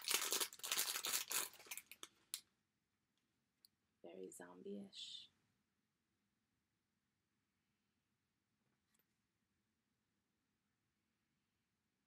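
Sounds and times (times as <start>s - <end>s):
wrapping crinkling and rustling: 0.0s - 2.3s.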